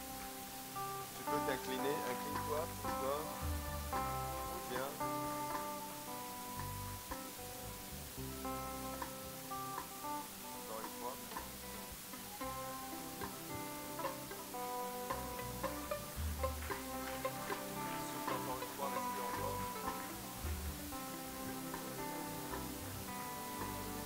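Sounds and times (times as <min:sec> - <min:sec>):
soft instrumental music: 0:00.0 - 0:24.0.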